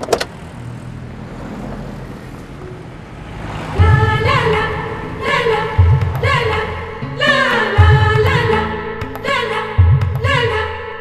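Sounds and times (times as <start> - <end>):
car engine idling: 2.5 - 8.5.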